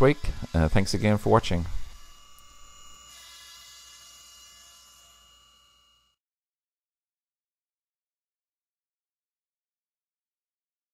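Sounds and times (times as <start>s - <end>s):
milling machine spindle whine: 0.0s - 6.2s.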